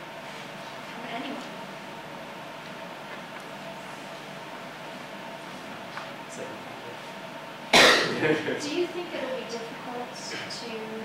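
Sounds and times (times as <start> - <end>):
room noise: 0.0 - 11.0
loud cough: 7.7 - 8.4.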